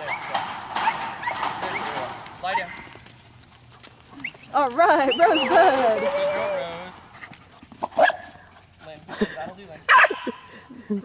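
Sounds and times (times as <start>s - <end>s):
dog yipping and barking: 7.9s - 8.3s, 9.9s - 10.4s.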